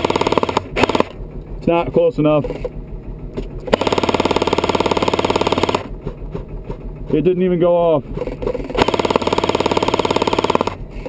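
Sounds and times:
airsoft rifle full-auto burst: 0:00.0 - 0:01.2, 0:03.7 - 0:05.9, 0:08.8 - 0:10.8.

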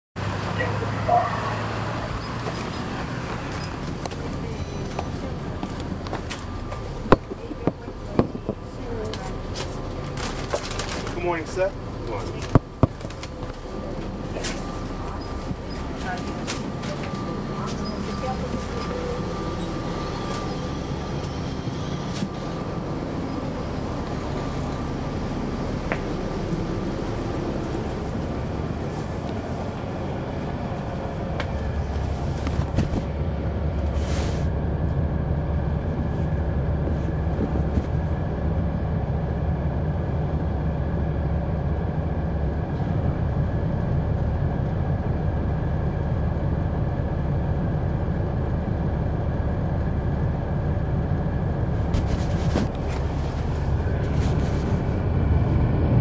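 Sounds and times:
bus engine drone: 0:00.2 - 0:56.0.

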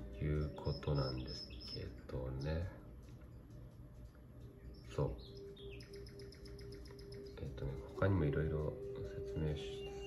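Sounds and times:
bird chirps: 0:00.0 - 0:02.8, 0:04.6 - 0:08.0, 0:08.6 - 0:10.0
steady low hum: 0:00.0 - 0:10.0.

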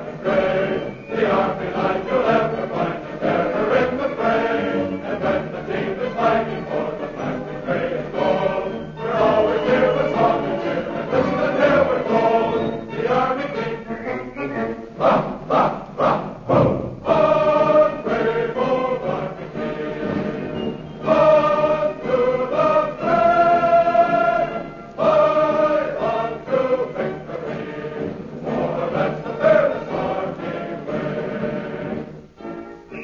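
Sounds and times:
choir singing with accompaniment: 0:00.0 - 0:33.0.

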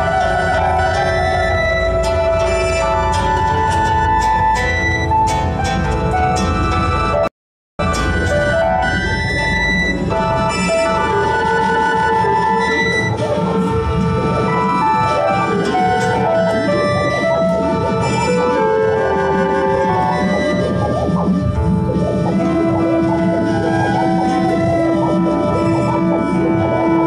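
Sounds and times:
flutes playing melody: 0:00.0 - 0:27.0
guitar: 0:00.0 - 0:27.0
keyboard: 0:00.0 - 0:27.0.

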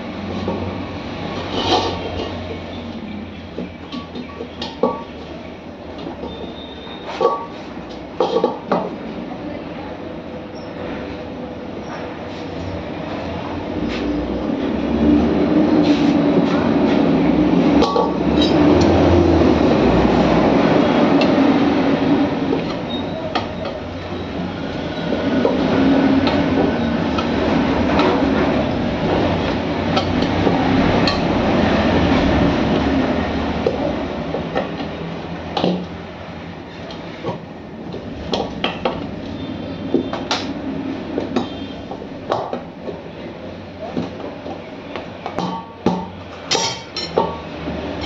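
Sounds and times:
loud steady rumble: 0:12.6 - 0:43.8.

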